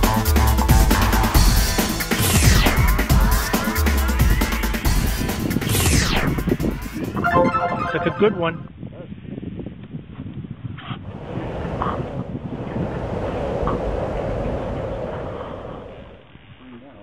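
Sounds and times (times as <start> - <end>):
wind buffeting microphone: 8.7 - 16.6.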